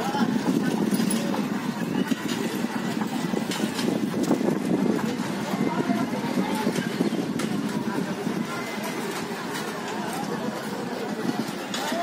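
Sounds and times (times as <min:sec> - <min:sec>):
faint voices: 0:00.0 - 0:12.0
street noise: 0:00.0 - 0:12.0.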